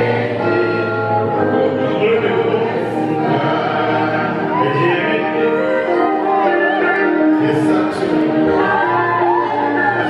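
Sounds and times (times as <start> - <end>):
live amplified music: 0.0 - 10.0
man singing into microphone: 0.0 - 10.0.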